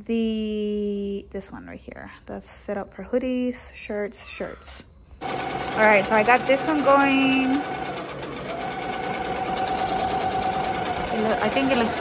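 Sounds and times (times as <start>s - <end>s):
embroidery machine stitching: 5.2s - 12.0s.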